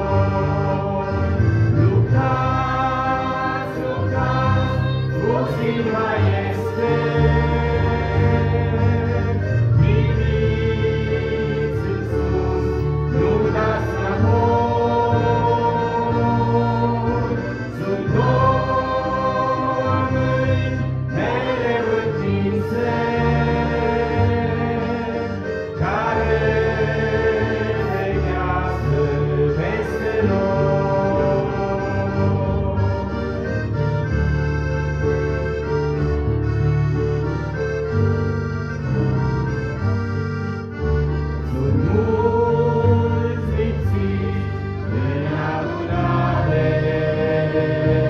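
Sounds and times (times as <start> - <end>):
choir singing: 0.0 - 33.8, 41.4 - 48.0
instrumental accompaniment: 0.0 - 48.0.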